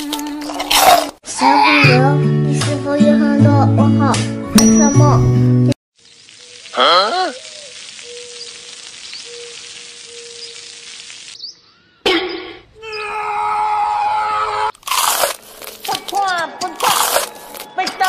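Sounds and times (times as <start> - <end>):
oil sizzling on hot stone: 6.0 - 11.7.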